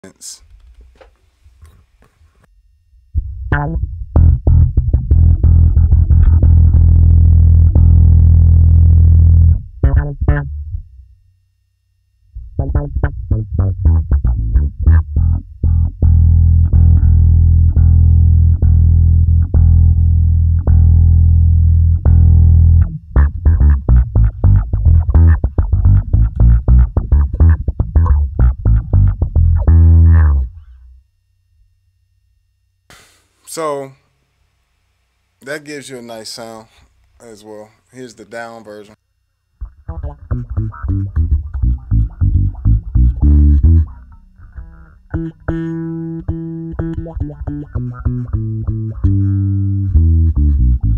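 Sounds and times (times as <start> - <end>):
filtered electric bass notes: 2.4 - 31.1, 39.6 - 50.9.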